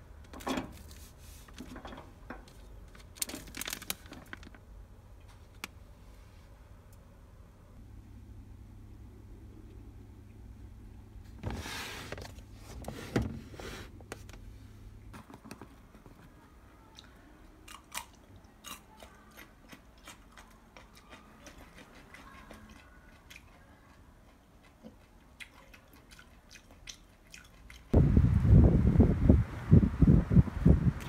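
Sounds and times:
person eating: 17.0 - 27.9
wind buffeting microphone: 28.0 - 31.0.

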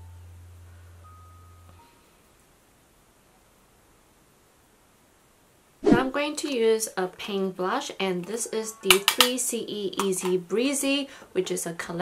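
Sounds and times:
low hum with faint high tone: 0.0 - 12.0.

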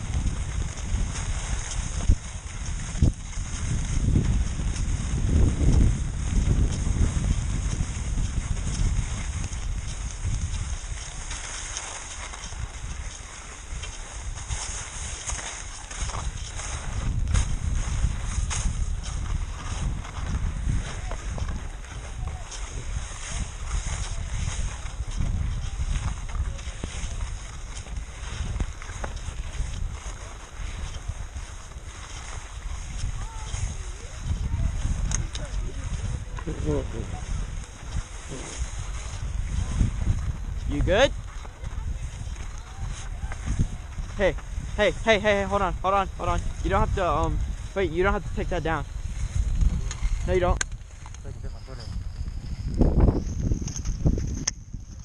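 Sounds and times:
skis scraping over snow: 0.0 - 55.0
wind buffeting microphone: 0.0 - 55.0.

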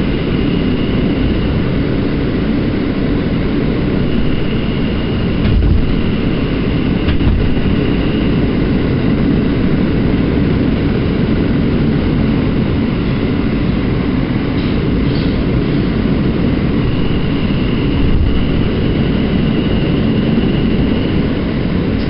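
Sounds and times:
faint high whine: 0.0 - 11.3, 15.5 - 22.0
rumble of train wheels on rail: 0.0 - 22.0.

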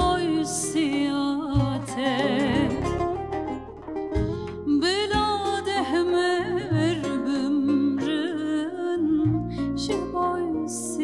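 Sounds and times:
woman singing folk song: 0.0 - 3.3, 4.2 - 11.0
plucked strings: 0.0 - 11.0.

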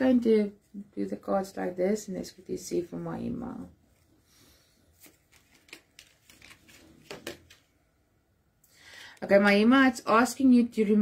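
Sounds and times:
cards tapping and flicking: 5.0 - 7.7.

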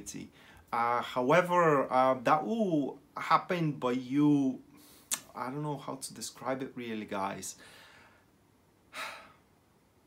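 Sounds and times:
man sighing: 8.9 - 9.4.

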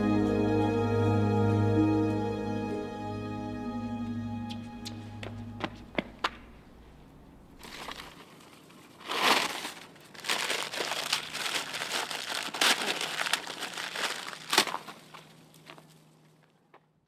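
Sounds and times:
leaves rustling and crinkling: 7.6 - 16.7
twigs snapping: 9.1 - 15.9.

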